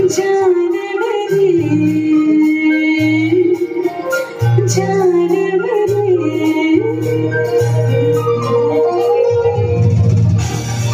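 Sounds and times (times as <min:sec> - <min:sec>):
woman singing into microphone: 0:00.0 - 0:10.4.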